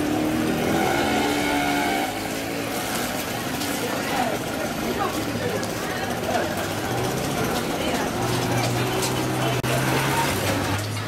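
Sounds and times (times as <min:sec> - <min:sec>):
voices and street bustle: 0:00.0 - 0:11.0
vehicle engine running: 0:02.3 - 0:11.0.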